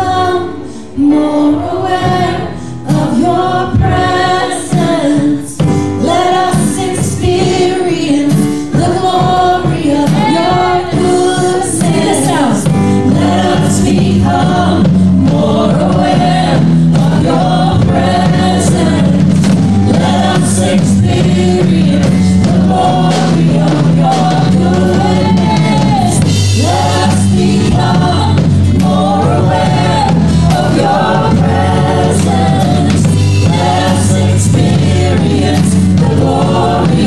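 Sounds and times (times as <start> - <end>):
acoustic guitar: 0.0 - 37.0
stage piano: 0.0 - 37.0
women singing with harmony: 0.0 - 37.0.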